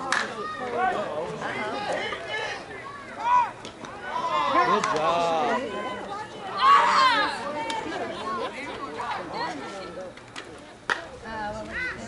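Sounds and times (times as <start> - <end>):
players shouting and calling out: 0.0 - 12.0
loud shouts: 2.0 - 7.8.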